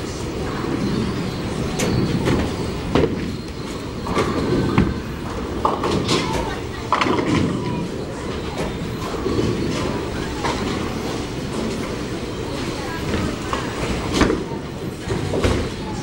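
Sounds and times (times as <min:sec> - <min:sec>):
bowling balls rumbling: 0:00.0 - 0:16.0
faint voices: 0:00.0 - 0:16.0.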